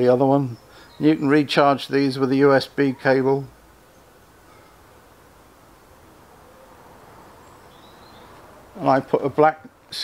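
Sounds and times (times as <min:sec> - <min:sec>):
faint bird chirps: 0:00.0 - 0:05.1, 0:06.3 - 0:08.9
outdoor background noise: 0:00.0 - 0:10.0.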